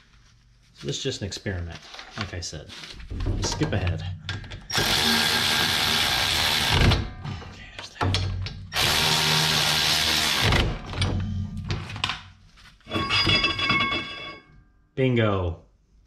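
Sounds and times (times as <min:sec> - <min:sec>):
cordless electric ratchet spinning: 0:04.7 - 0:06.9, 0:08.7 - 0:10.6.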